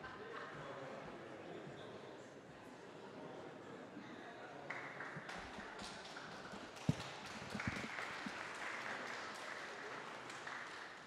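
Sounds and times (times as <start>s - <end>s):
audience applause: 6.4s - 11.0s.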